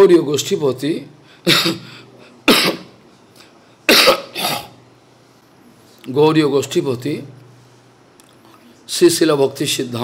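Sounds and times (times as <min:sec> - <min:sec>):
man coughing: 0:01.4 - 0:02.9, 0:03.9 - 0:04.8.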